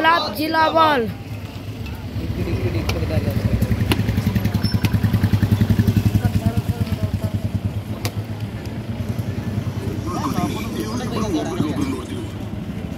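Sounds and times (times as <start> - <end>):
faint voices: 5.3 - 12.9.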